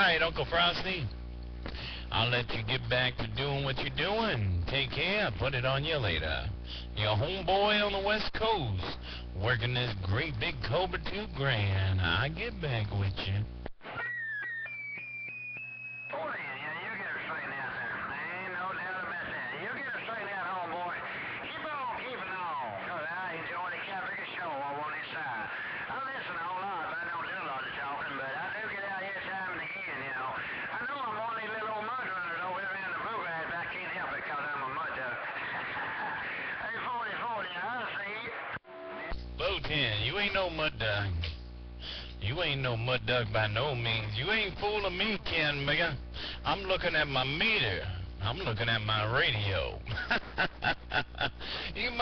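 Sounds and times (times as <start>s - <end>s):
man's voice over radio: 0.0s - 13.6s, 16.1s - 50.1s, 50.9s - 52.0s
steady low hum: 0.0s - 13.8s, 38.7s - 52.0s
short high radio tone: 38.1s - 41.4s.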